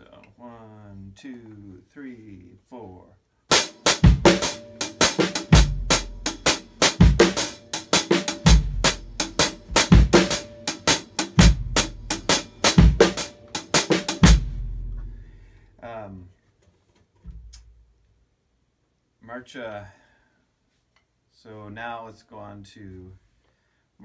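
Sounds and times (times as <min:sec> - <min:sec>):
drum kit groove: 0:03.5 - 0:15.4.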